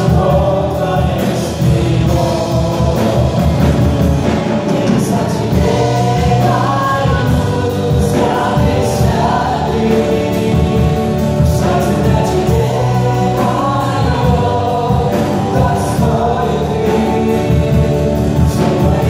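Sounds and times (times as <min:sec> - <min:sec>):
acoustic and electric guitars: 0:00.0 - 0:19.0
drum kit: 0:00.0 - 0:19.0
voices singing together: 0:00.0 - 0:19.0.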